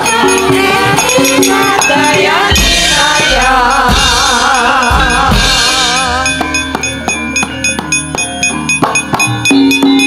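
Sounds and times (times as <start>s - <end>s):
gamelan ensemble playing: 0.0s - 10.0s.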